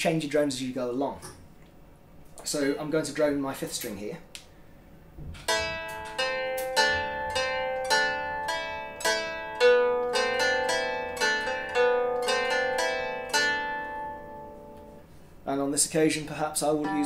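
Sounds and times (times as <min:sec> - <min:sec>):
plucked lyre: 0:05.4 - 0:15.1, 0:16.6 - 0:17.0
man's voice: 0:15.5 - 0:17.0.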